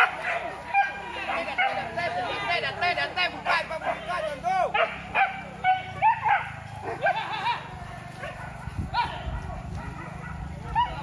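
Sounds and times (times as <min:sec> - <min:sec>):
dogs barking and yelping: 0:00.0 - 0:02.4, 0:03.4 - 0:11.0.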